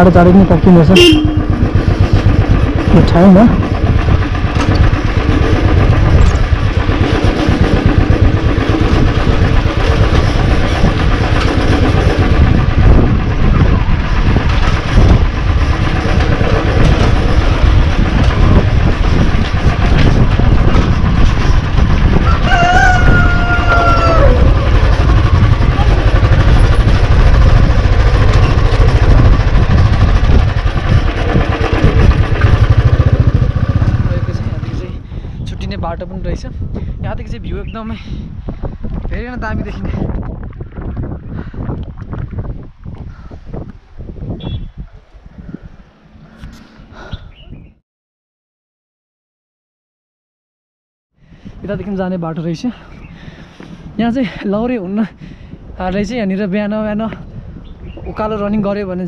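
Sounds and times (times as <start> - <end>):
motorcycle engine running: 0.0 - 46.9
rooster crowing: 22.2 - 24.7.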